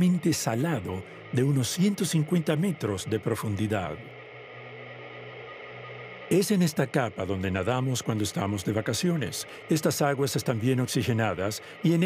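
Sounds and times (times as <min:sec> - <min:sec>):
low sustained music drone: 0:00.0 - 0:12.0.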